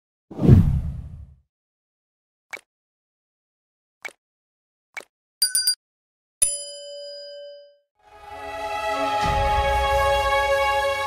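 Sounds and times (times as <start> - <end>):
deep whoosh: 0.4 - 1.3.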